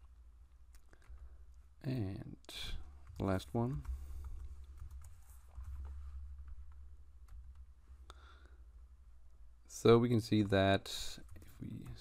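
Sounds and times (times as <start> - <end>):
keyboard typing: 2.8 - 7.7, 10.2 - 12.0.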